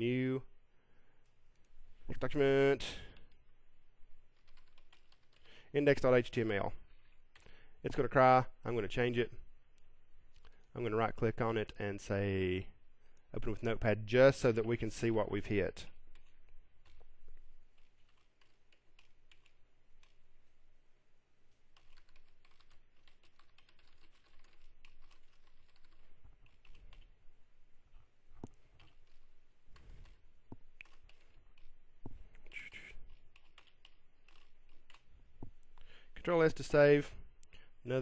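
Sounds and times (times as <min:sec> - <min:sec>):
keyboard typing: 0:04.3 - 0:05.6, 0:16.1 - 0:20.3, 0:21.7 - 0:27.2, 0:28.4 - 0:35.9.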